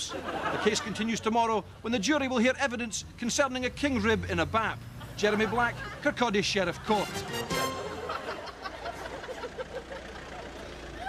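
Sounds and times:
van engine rumble driving past: 0:01.5 - 0:11.0.

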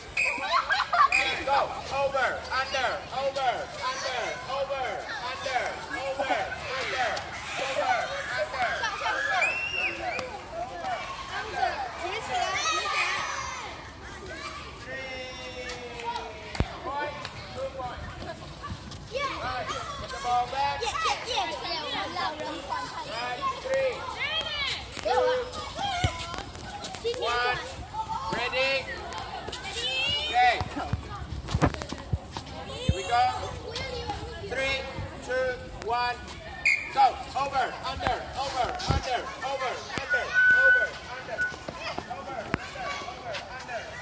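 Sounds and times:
children chattering and calling: 0:00.0 - 0:44.0.

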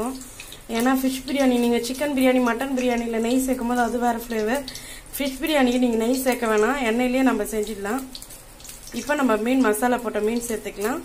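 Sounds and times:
woman talking: 0:00.0 - 0:08.1, 0:09.0 - 0:11.0
oil sizzling: 0:00.0 - 0:11.0.

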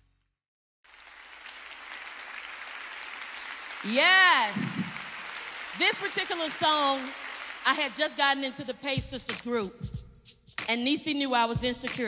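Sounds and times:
audience applauding: 0:00.9 - 0:08.2.

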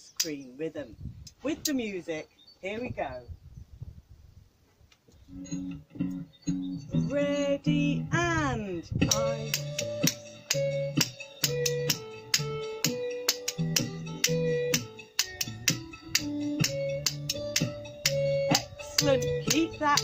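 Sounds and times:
dance music with steady beat: 0:09.1 - 0:20.0.

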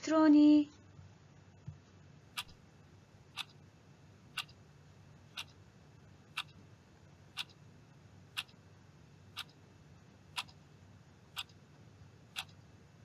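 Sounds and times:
clock ticking: 0:02.3 - 0:02.7, 0:03.3 - 0:03.6, 0:04.3 - 0:04.6, 0:05.3 - 0:05.6, 0:06.3 - 0:06.6, 0:07.3 - 0:07.7, 0:08.3 - 0:08.6, 0:09.3 - 0:09.6, 0:10.3 - 0:10.6, 0:11.3 - 0:11.6, 0:12.3 - 0:12.6.

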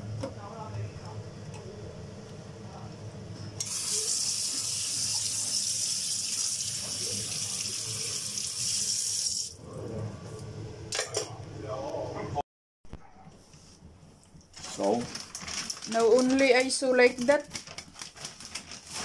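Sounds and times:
kitchen tap running into sink: 0:03.6 - 0:09.6.

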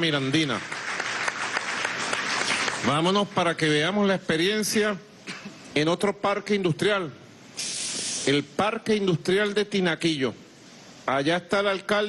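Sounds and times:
audience applauding: 0:00.4 - 0:03.0
man speaking: 0:02.8 - 0:05.1, 0:05.7 - 0:07.2, 0:08.2 - 0:10.4, 0:11.0 - 0:12.0.

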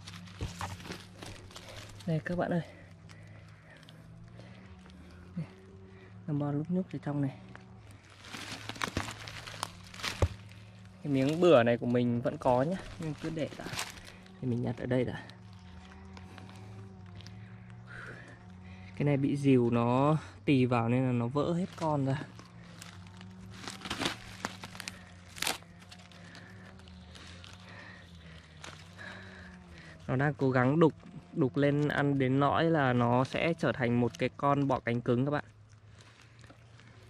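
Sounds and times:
dry wood crackling and snapping: 0:00.0 - 0:20.3, 0:21.1 - 0:37.0
steady low hum: 0:00.0 - 0:37.0.

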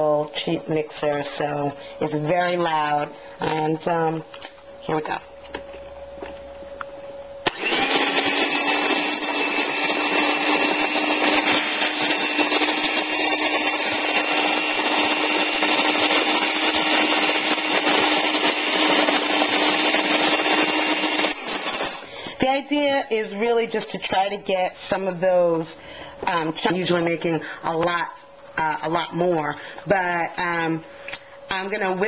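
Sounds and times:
electric hand mixer humming: 0:07.4 - 0:28.0.

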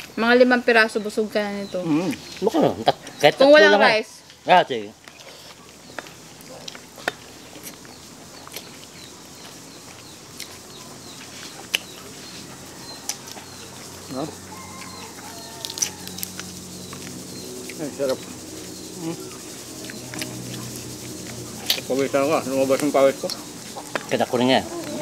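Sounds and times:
bird chirping: 0:00.0 - 0:25.0
chewing and smacking: 0:05.0 - 0:14.0, 0:14.7 - 0:21.9, 0:22.8 - 0:25.0.

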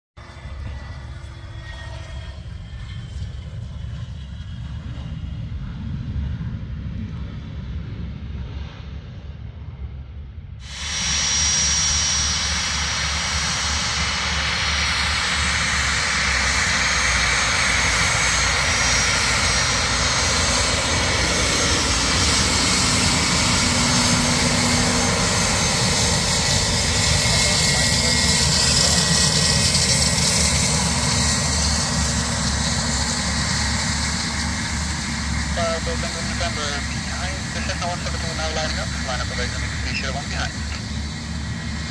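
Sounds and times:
high turbine whine: 0:00.2 - 0:41.9
jet engine roar: 0:00.2 - 0:41.9
distant rumble: 0:13.6 - 0:41.9.

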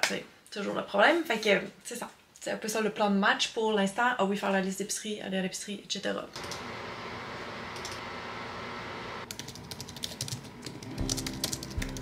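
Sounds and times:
fast typing on keyboard: 0:09.3 - 0:12.0.

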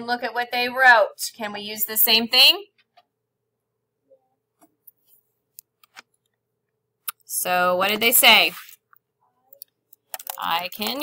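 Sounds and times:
computer mouse clicks: 0:09.5 - 0:11.0.

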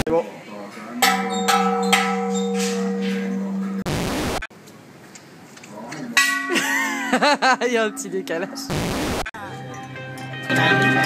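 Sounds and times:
large temple bell ringing: 0:01.0 - 0:03.9
static hiss: 0:03.9 - 0:04.5, 0:08.7 - 0:09.3.

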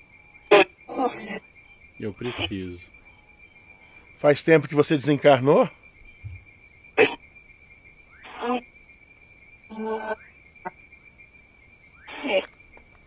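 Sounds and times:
night insects chirring: 0:00.0 - 0:13.0
radio voice fragments and static: 0:02.0 - 0:02.8, 0:12.1 - 0:12.5.

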